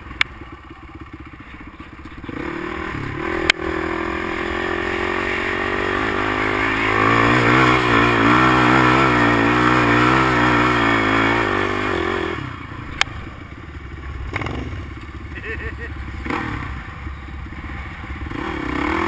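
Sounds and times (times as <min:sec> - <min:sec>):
off-road vehicle engine revving: 0:01.9 - 0:13.4, 0:14.1 - 0:19.0.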